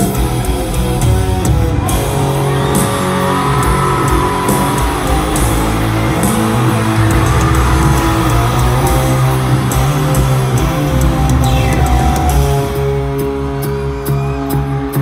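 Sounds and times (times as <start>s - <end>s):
electric guitar: 0.0s - 15.0s
rock band playing: 0.0s - 15.0s.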